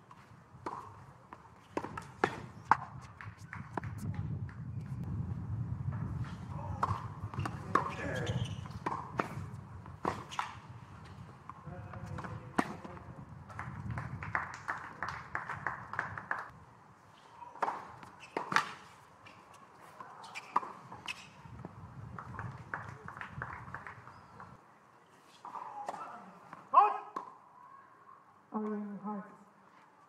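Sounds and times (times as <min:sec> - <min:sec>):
racket hitting ball: 0:06.8 - 0:11.2, 0:12.0 - 0:13.0, 0:17.6 - 0:19.0.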